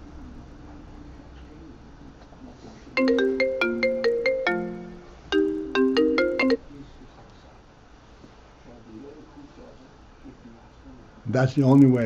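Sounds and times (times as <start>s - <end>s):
phone ringtone melody: 3.0s - 6.6s.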